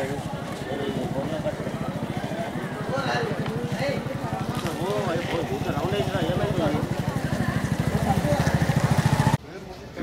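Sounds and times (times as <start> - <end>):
small engine running: 0.0 - 9.4
voices talking: 0.0 - 10.0.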